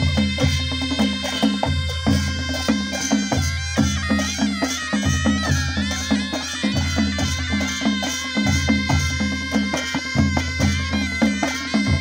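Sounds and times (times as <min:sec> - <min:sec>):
cymbals: 0:00.0 - 0:12.0
drums beating: 0:00.0 - 0:12.0
reed pipes melody: 0:00.0 - 0:12.0.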